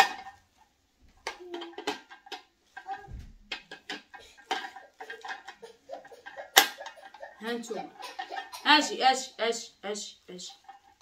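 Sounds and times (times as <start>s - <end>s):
plastic parts clicking and rattling: 0.0s - 0.6s, 1.2s - 8.6s.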